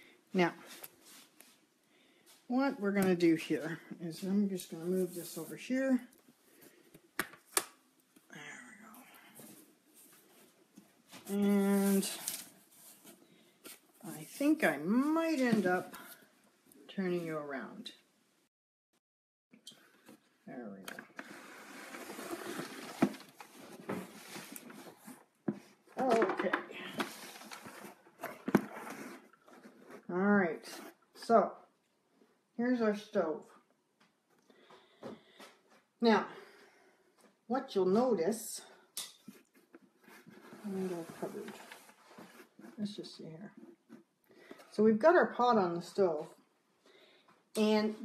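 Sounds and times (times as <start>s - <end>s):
faint handling rustle: 9.2s - 16.3s, 19.9s - 26.2s, 39.2s - 44.8s.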